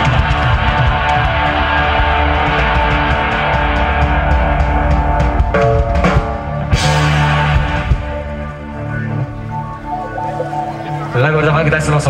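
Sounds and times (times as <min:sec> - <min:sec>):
bass guitar: 0:00.0 - 0:12.0
electric guitars: 0:00.0 - 0:12.0.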